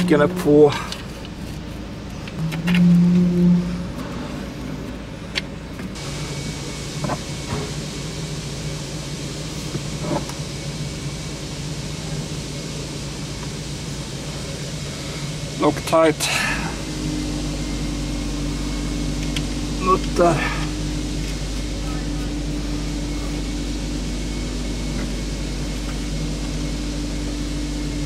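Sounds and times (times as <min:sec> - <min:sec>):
steady mechanical hum: 0:00.0 - 0:28.0.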